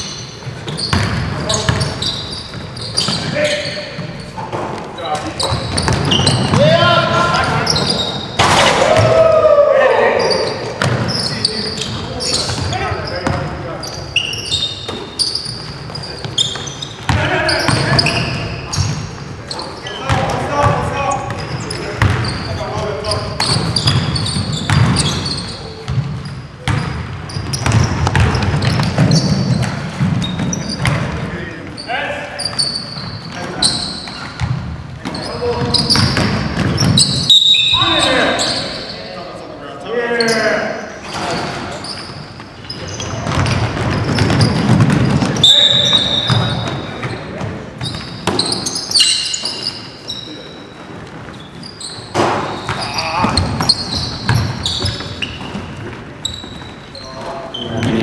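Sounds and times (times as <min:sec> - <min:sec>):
basketball bouncing on wooden court: 0:00.0 - 0:03.4, 0:05.4 - 0:09.2, 0:10.7 - 0:11.2, 0:11.8 - 0:13.5, 0:20.1 - 0:31.3, 0:32.9 - 0:37.3, 0:42.8 - 0:48.8, 0:51.9 - 0:56.8
players calling out: 0:00.7 - 0:25.9, 0:51.6 - 0:58.0.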